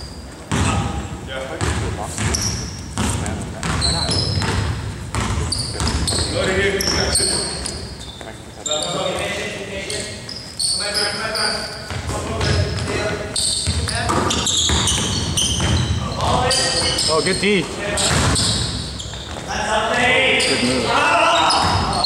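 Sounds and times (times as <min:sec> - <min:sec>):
sneakers squeaking: 0:00.0 - 0:22.0
players' voices: 0:00.3 - 0:22.0
basketball bouncing: 0:00.5 - 0:01.0, 0:01.6 - 0:07.1, 0:11.9 - 0:17.0, 0:18.0 - 0:19.5.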